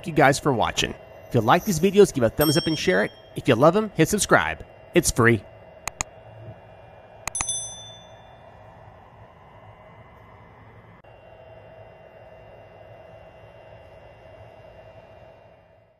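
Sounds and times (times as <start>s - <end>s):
air purifier humming: 0.0s - 15.9s
bell ding: 1.3s - 3.4s, 7.3s - 8.4s.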